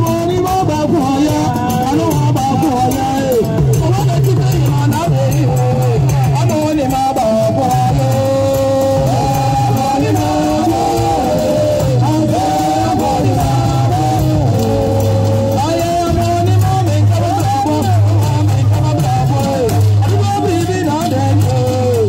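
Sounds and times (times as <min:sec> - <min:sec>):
steady drumming: 0:00.0 - 0:22.0
voices singing a melody: 0:00.0 - 0:22.0.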